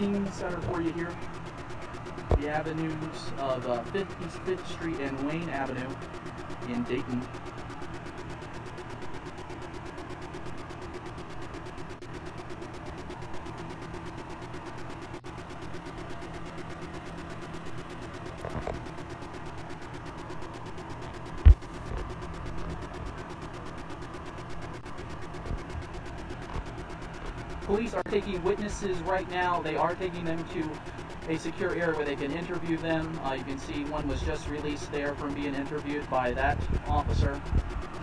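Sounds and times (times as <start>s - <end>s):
engine idling hum: 0.0s - 38.0s.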